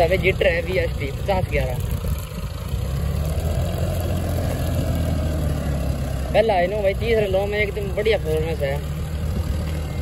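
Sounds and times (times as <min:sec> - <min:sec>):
tractor diesel engine under load: 0:00.0 - 0:10.0.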